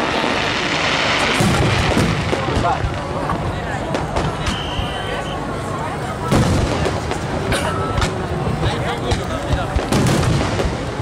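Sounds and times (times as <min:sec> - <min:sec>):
fireworks booming and bursting: 0:00.0 - 0:11.0.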